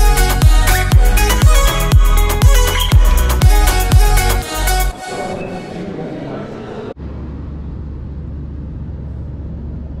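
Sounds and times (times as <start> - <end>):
indistinct chatter: 4.9 - 7.0
airliner cabin drone and hiss: 5.4 - 10.0.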